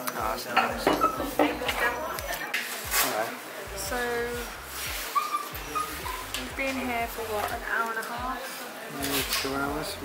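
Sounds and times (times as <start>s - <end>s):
dog whimpering: 5.1s - 6.3s.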